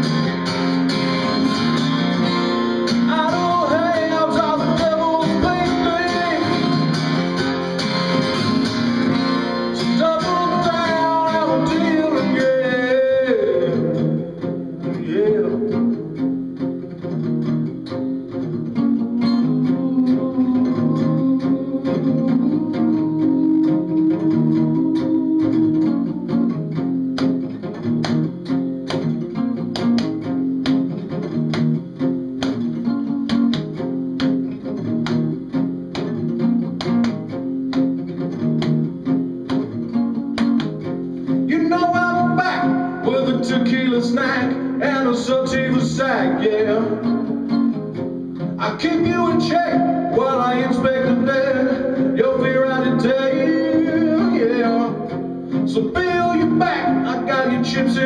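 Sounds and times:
acoustic guitar chord rhythm: 0:00.0 - 0:58.0
acoustic guitar lead melody: 0:00.0 - 0:58.0.

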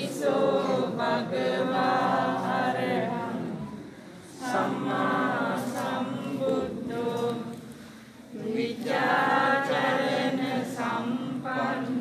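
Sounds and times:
group of voices chanting: 0:00.0 - 0:07.5, 0:08.3 - 0:12.0.

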